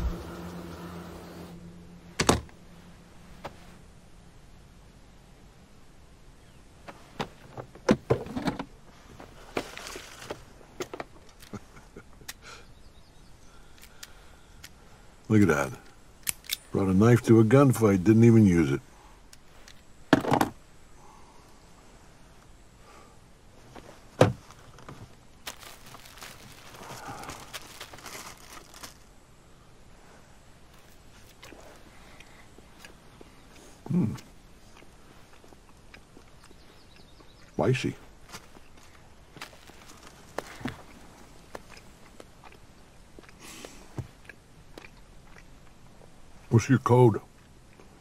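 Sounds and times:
man chewing: 30.8s - 37.5s, 40.8s - 45.9s.

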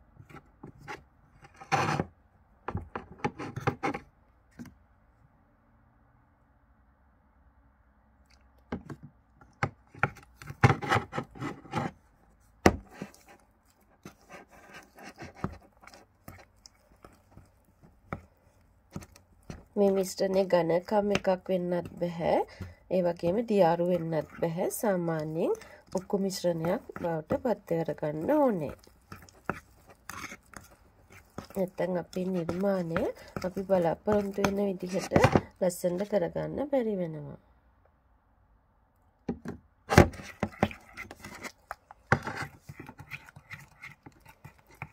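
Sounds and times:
metal spoon scraping powder in bowl: 12.8s - 17.5s, 18.9s - 36.2s, 40.1s - 44.9s
woman's voice: 19.8s - 28.8s, 31.5s - 37.4s.

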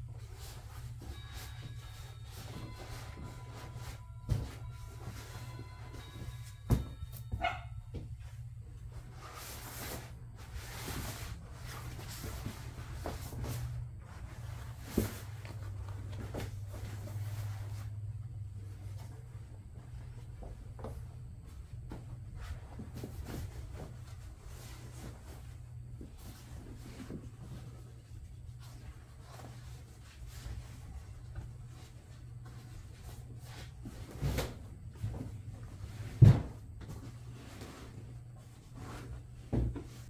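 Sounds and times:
steady low hum: 0.0s - 40.0s
vinyl cover rustling: 8.2s - 40.0s.

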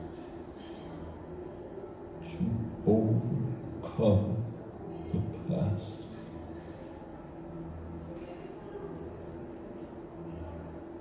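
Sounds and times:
low droning hum: 0.0s - 11.0s.

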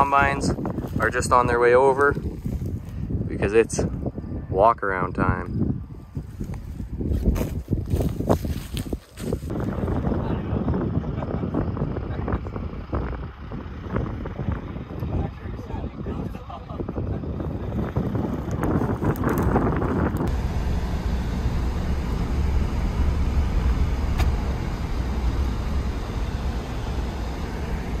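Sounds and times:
wind buffeting microphone: 0.0s - 28.0s
car interior engine rumble: 6.2s - 28.0s.

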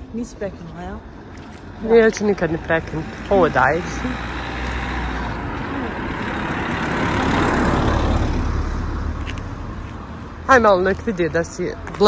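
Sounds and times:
car driving past: 2.3s - 9.9s.

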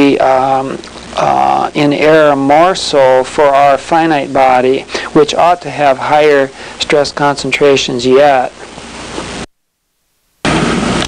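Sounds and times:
recording hiss: 0.0s - 11.0s.

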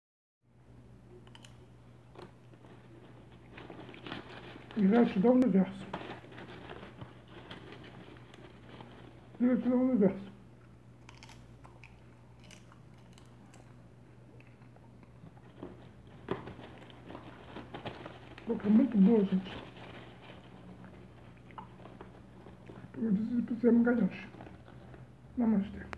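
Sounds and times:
low steady hum: 0.5s - 25.9s
hand rustling popcorn bag: 1.3s - 10.3s, 15.0s - 25.9s.

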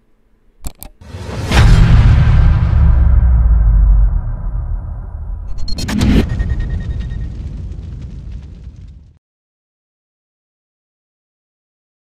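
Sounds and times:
bright whooshing hit: 1.0s - 8.0s
low rumble: 1.2s - 9.2s.

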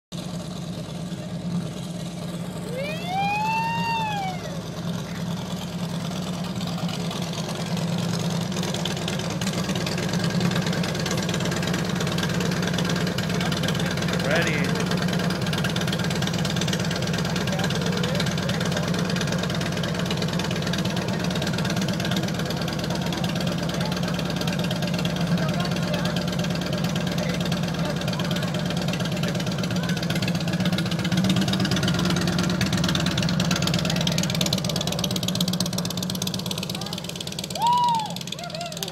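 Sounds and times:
motorcycle engine running: 0.1s - 38.9s.

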